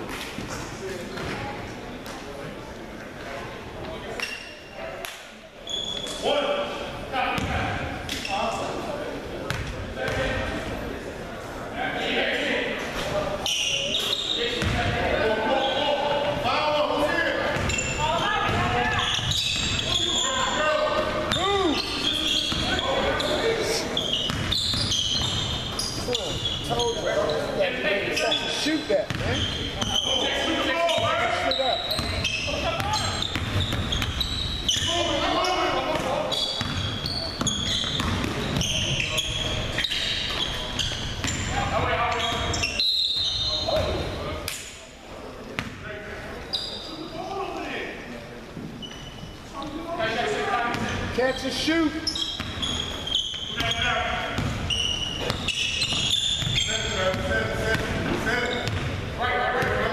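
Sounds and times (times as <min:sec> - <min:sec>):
sneakers squeaking: 0:03.8 - 0:11.0, 0:12.8 - 0:44.8, 0:45.5 - 0:59.9
players calling out: 0:13.4 - 0:44.2.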